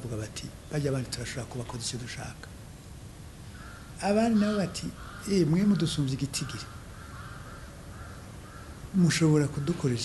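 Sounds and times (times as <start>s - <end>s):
faint bird calls: 3.4s - 10.0s.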